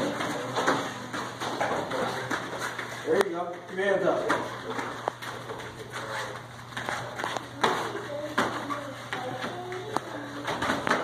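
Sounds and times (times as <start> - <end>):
padded strikes and feet landing: 10.4 - 11.0.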